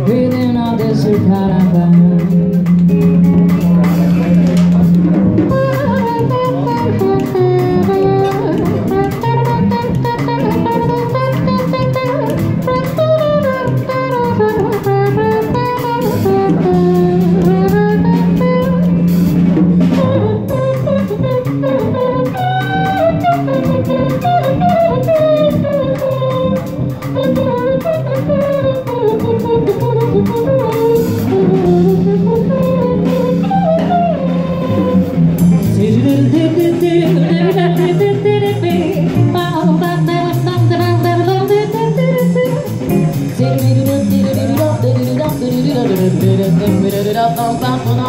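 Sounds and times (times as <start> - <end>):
drums: 0.0 - 48.0
long held bass notes: 0.0 - 48.0
melodic guitar lead: 0.0 - 48.0.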